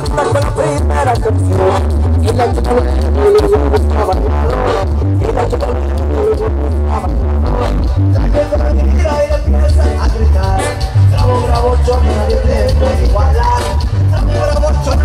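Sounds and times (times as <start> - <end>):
regional dance music: 0.0 - 15.0.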